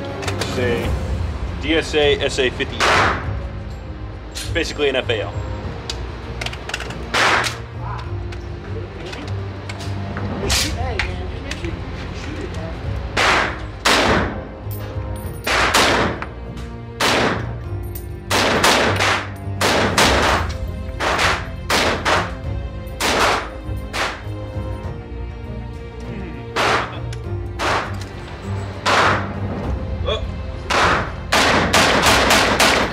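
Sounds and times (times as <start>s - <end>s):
rifle shots echoing indoors: 13.2s - 14.4s, 15.5s - 16.2s, 17.0s - 17.6s, 18.3s - 22.3s, 30.7s - 32.9s.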